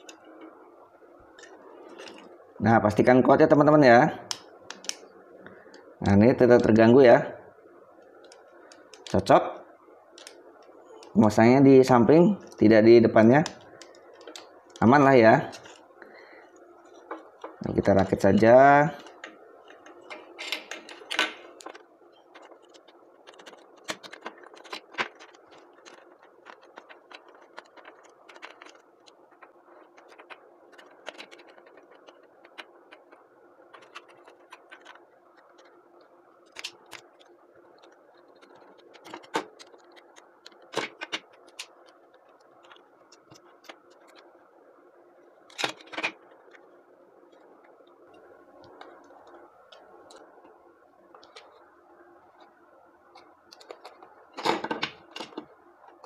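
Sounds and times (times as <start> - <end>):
faint steady hum: 0.0 - 56.0
plastic parts clicking and knocking: 19.0 - 35.8, 36.4 - 44.3, 53.1 - 56.0.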